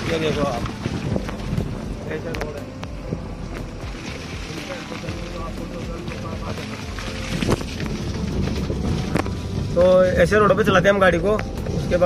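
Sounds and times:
wind buffeting microphone: 0:00.0 - 0:04.6, 0:05.9 - 0:12.0
car engine rumbling: 0:00.0 - 0:12.0.

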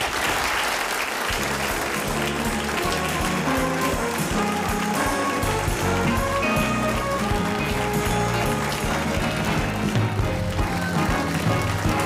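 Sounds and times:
band playing bright music: 0:01.3 - 0:12.0.

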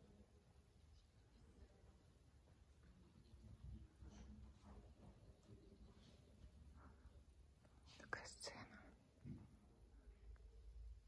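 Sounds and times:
person whispering: 0:07.9 - 0:09.0.

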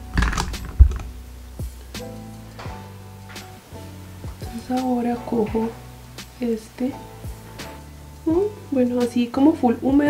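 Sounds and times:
hair rustling: 0:00.0 - 0:01.3
soft background music: 0:00.0 - 0:10.0.

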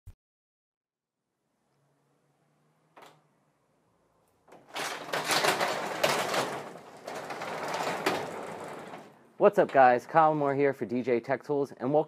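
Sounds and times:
garage door rattling on tracks: 0:04.5 - 0:10.3.

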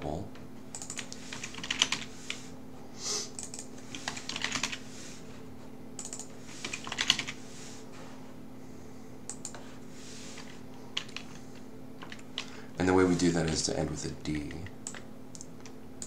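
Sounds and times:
faint steady hum: 0:00.0 - 0:16.0
typing on computer keyboard: 0:00.7 - 0:02.1, 0:03.4 - 0:04.8, 0:06.0 - 0:07.4, 0:12.0 - 0:12.5, 0:14.4 - 0:15.5.

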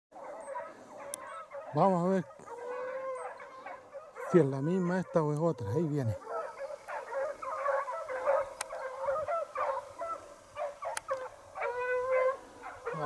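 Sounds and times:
foxhounds baying: 0:00.1 - 0:13.0.

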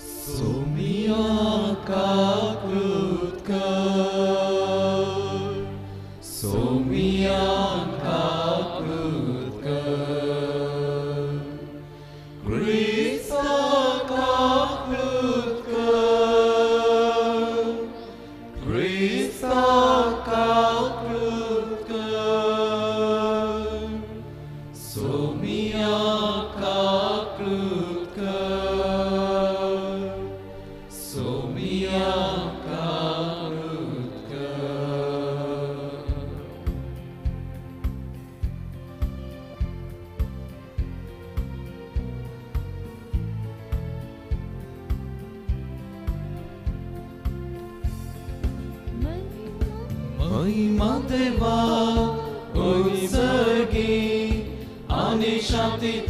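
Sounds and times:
liturgical chant singing: 0:00.0 - 0:37.1, 0:50.2 - 0:56.0
low accompanying instrument notes: 0:47.6 - 0:56.0.

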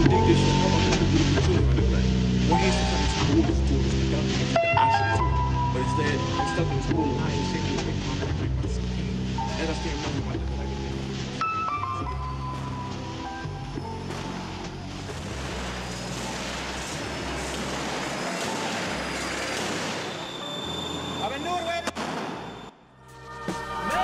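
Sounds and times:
bass-heavy hip-hop instrumental: 0:00.0 - 0:15.9
wash of noise: 0:00.3 - 0:20.2.

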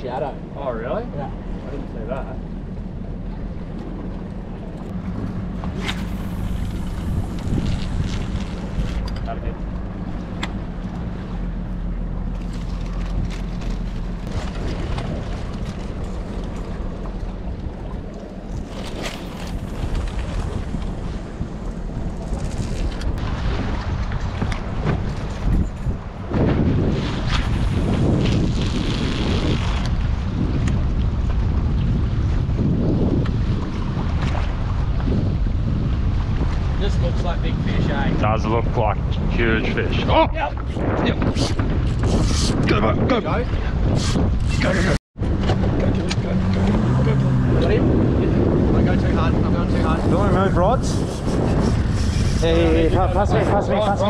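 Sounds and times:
water around hull: 0:00.0 - 0:54.0
wind buffeting microphone: 0:00.0 - 0:54.0
boat motor running: 0:01.2 - 0:26.4, 0:44.6 - 0:54.0.

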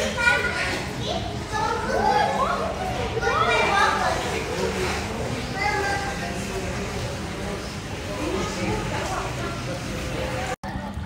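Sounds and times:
young children calling and squealing: 0:00.0 - 0:04.3.

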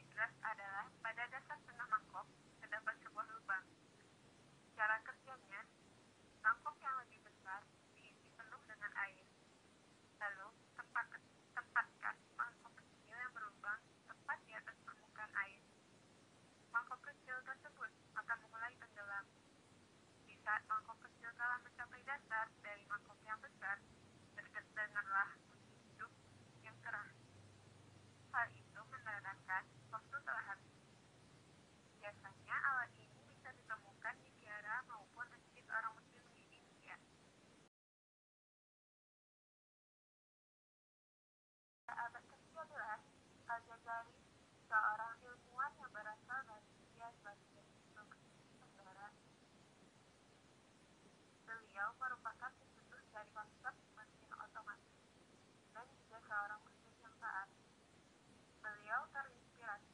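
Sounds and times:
person speaking over telephone: 0:00.0 - 0:03.7, 0:04.8 - 0:05.7, 0:06.4 - 0:09.3, 0:10.2 - 0:15.6, 0:16.7 - 0:19.3, 0:20.3 - 0:23.8, 0:24.4 - 0:27.2, 0:28.3 - 0:30.6, 0:32.0 - 0:37.0, 0:41.9 - 0:49.1, 0:51.5 - 0:54.8, 0:55.8 - 0:57.5, 0:58.6 - 0:59.9.

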